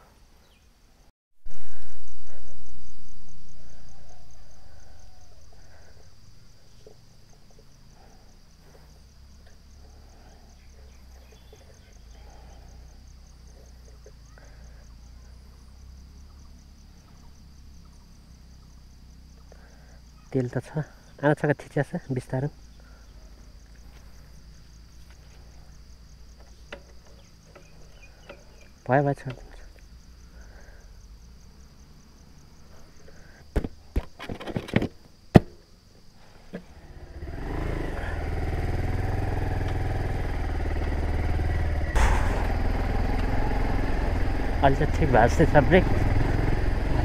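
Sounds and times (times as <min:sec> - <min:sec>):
motorcycle engine running: 0:36.6 - 0:47.0.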